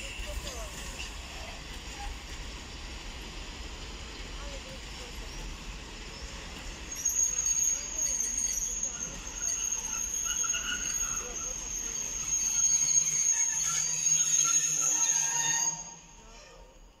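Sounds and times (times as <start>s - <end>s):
train wheels squealing: 0.0s - 2.8s, 3.8s - 17.0s
train rumble: 0.0s - 17.0s.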